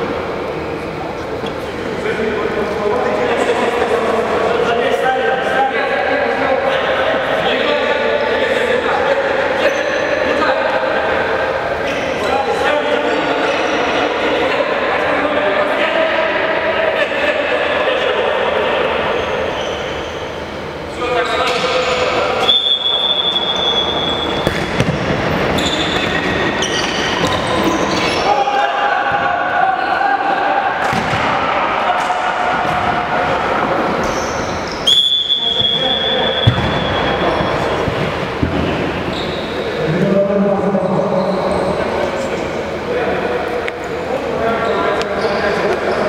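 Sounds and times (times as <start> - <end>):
referee's whistle blasts: 22.4 - 24.5, 34.2 - 37.6.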